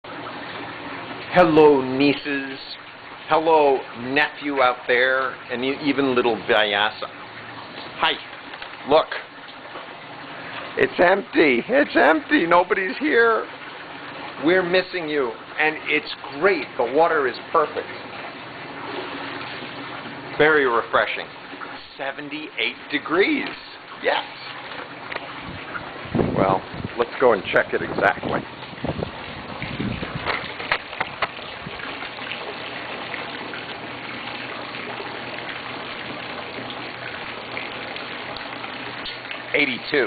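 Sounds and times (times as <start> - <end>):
hand swishing pool water: 0.1 - 26.0.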